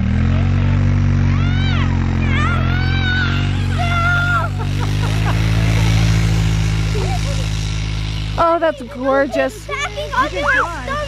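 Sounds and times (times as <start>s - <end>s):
atv engine running: 0.0s - 11.0s
children's voices: 1.2s - 6.2s, 6.8s - 7.7s, 8.3s - 11.0s.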